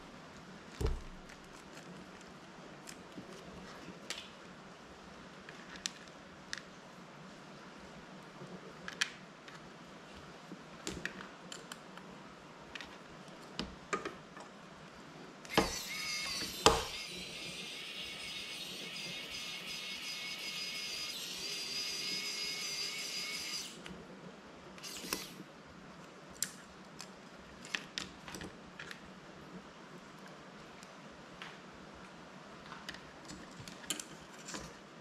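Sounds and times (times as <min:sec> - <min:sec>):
small power tool whirring: 0:15.5 - 0:23.9, 0:24.8 - 0:25.4.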